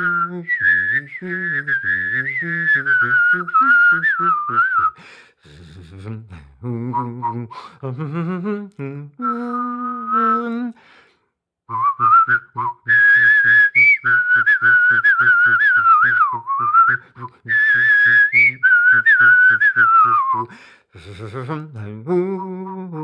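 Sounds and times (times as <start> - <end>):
person whistling a melody: 0.0 - 6.0, 6.6 - 10.8, 11.7 - 21.3, 22.2 - 23.0
low rhythmic pulsing voice: 5.5 - 9.6, 21.0 - 23.0.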